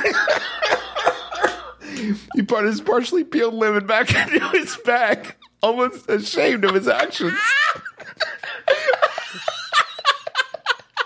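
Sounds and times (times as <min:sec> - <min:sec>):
men laughing: 0:00.0 - 0:02.5, 0:04.1 - 0:11.0.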